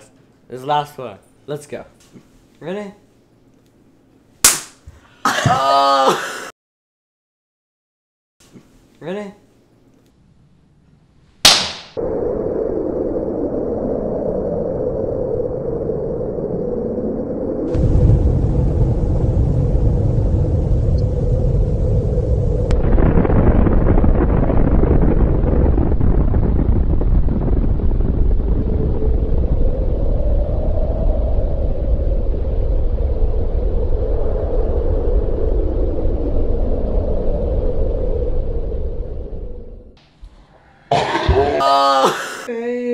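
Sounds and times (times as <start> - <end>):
explosion deep rumble: 12.0 - 40.0.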